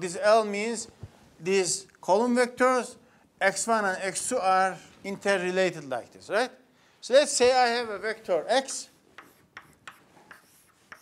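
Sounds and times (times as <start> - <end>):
chalk tapping and scraping on chalkboard: 8.9 - 11.0.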